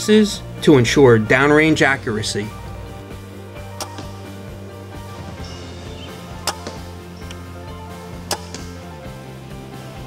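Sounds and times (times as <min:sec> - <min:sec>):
background music: 0:00.0 - 0:10.0
crossbow firing snaps: 0:03.8 - 0:04.4, 0:06.4 - 0:07.5, 0:08.2 - 0:08.8.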